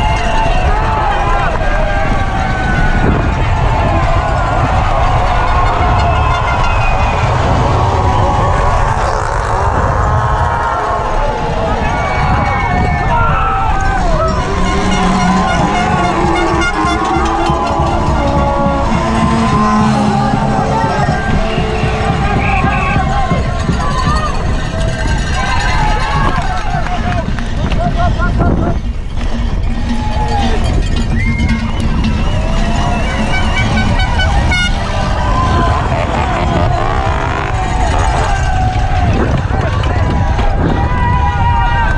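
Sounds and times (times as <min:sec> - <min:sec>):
noisemakers tooting: 0:00.0 - 0:41.9
spectators shouting: 0:00.0 - 0:41.9
wind and trail rumble: 0:00.0 - 0:41.9
horns blowing held tones: 0:03.6 - 0:07.8, 0:13.4 - 0:27.5, 0:29.3 - 0:39.0.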